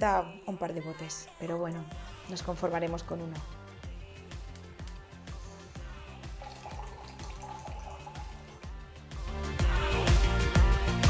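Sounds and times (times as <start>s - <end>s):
background music with steady beat: 0.0s - 11.0s
liquid trickling into glass: 6.1s - 8.8s.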